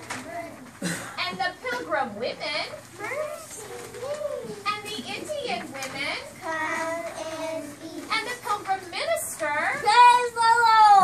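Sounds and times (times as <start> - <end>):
young children singing together: 6.4 - 8.5.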